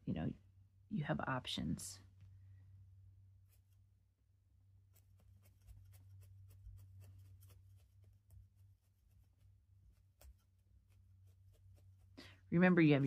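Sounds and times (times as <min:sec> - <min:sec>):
low steady hum: 0:00.0 - 0:13.0
felting needle poking wool: 0:04.7 - 0:13.0.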